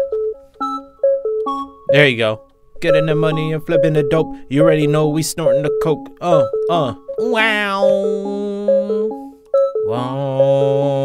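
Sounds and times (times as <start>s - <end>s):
synthesizer repeating melody: 0.0s - 11.0s.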